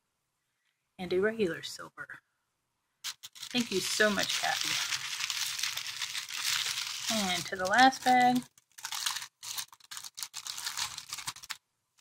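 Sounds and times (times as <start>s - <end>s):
plastic bag crinkling: 3.0s - 12.0s.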